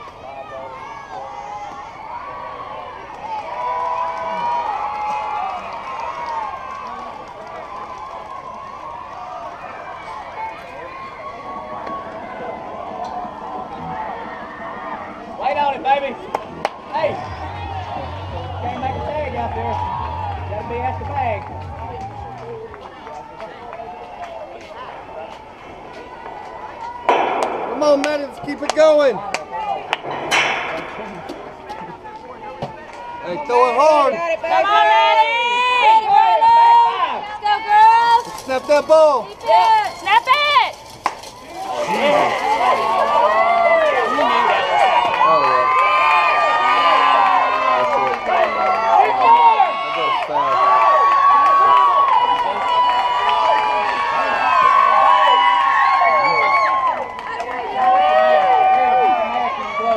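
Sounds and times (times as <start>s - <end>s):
chatter of spectators: 0.0s - 59.9s
sharp knocks: 27.1s - 31.9s
people shouting: 27.1s - 40.7s.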